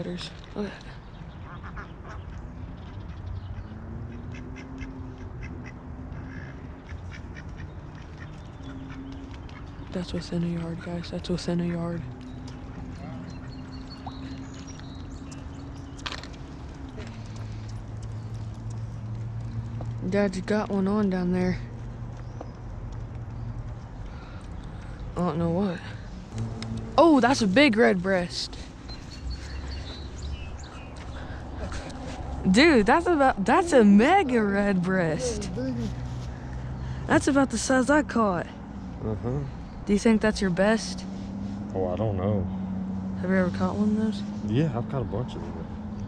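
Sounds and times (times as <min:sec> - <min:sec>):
ducks quacking: 0:01.4 - 0:10.2
low steady rumble: 0:08.3 - 0:42.6.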